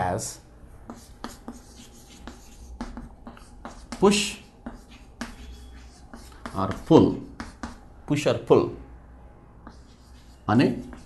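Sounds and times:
chalk writing on chalkboard: 0.8s - 7.9s, 9.6s - 11.0s.

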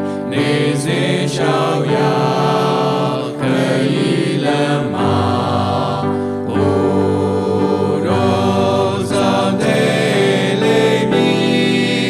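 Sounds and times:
musical accompaniment: 0.0s - 12.0s
voices singing a hymn: 0.0s - 12.0s.

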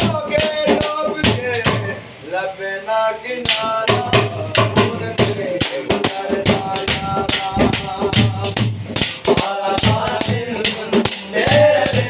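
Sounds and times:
man singing folk song: 0.0s - 12.0s
hand drum strokes: 3.5s - 12.0s.

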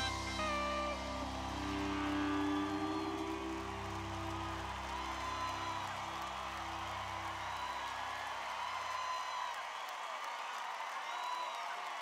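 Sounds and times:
live band sustained chords: 0.0s - 7.7s.

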